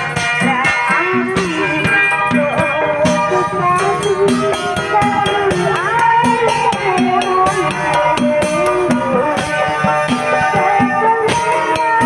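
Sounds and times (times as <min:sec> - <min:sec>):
drums: 0:00.0 - 0:12.0.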